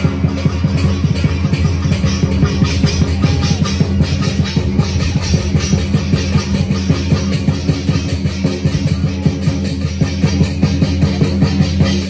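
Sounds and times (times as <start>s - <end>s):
low drone: 0.0s - 11.4s
cymbal clashes: 0.0s - 12.0s
fast drumming: 0.0s - 12.0s.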